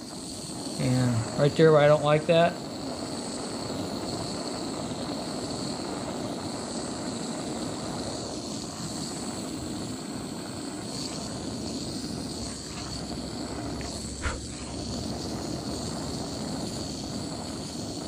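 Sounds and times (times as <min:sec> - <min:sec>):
gas torch hissing: 0:00.0 - 0:18.0.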